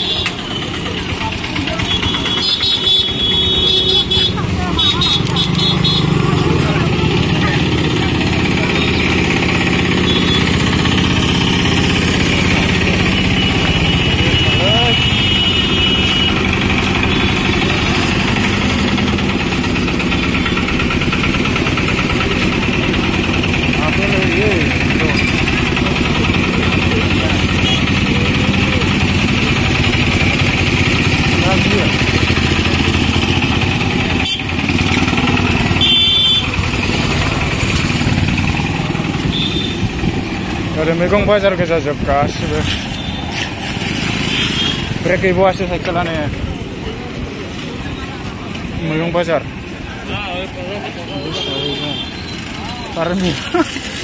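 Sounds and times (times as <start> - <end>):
motorcycle and rickshaw engines: 0.0 - 54.0
people's voices: 3.7 - 15.4, 21.4 - 34.2, 45.0 - 54.0.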